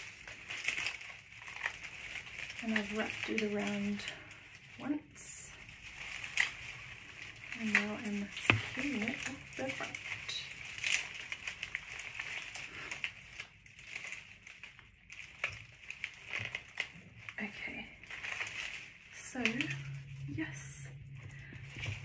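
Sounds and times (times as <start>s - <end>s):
dried stems crinkling and crackling: 0.0s - 22.0s.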